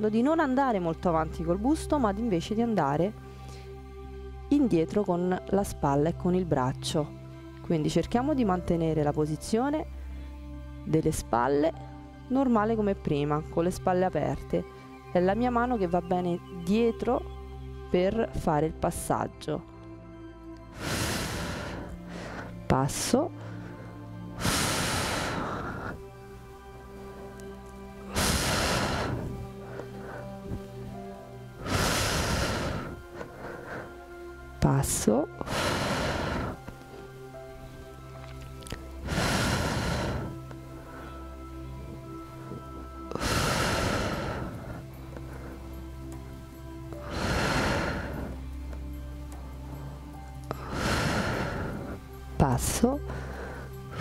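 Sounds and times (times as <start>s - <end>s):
background music: 0.0s - 54.0s
breath blown into microphone: 20.7s - 22.6s, 23.4s - 26.0s, 28.1s - 31.0s, 31.6s - 34.0s, 35.4s - 36.8s, 38.6s - 45.8s, 47.0s - 48.4s, 49.6s - 52.0s.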